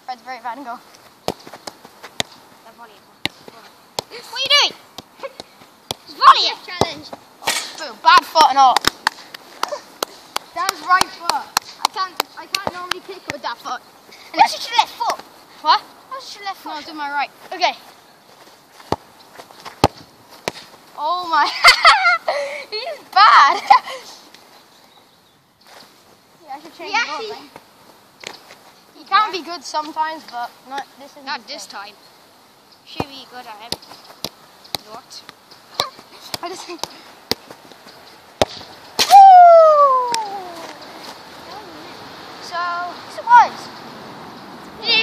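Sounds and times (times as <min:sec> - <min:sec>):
light ball taps: 0:00.9 - 0:02.4, 0:08.4 - 0:13.6, 0:33.0 - 0:37.8
football being kicked: 0:01.2 - 0:02.4, 0:05.0 - 0:07.2, 0:18.8 - 0:20.7, 0:38.4 - 0:39.2
football kicked with a thud: 0:38.4 - 0:39.1
boy's long falling cry: 0:39.1 - 0:40.8.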